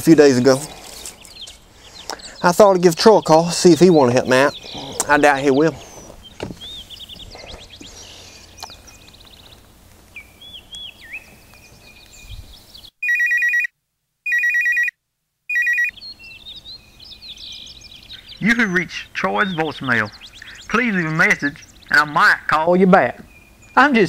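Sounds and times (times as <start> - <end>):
electronic telephone ring: 13.0 - 13.7, 14.3 - 14.9, 15.5 - 16.0.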